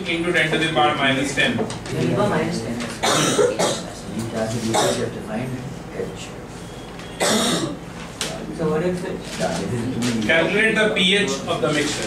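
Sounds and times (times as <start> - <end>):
person coughing: 3.0 - 3.9, 4.7 - 5.1, 7.2 - 7.8.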